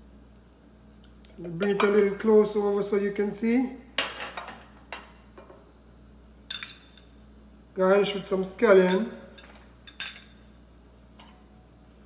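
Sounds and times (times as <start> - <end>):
kitchenware clinks: 8.9 - 10.5.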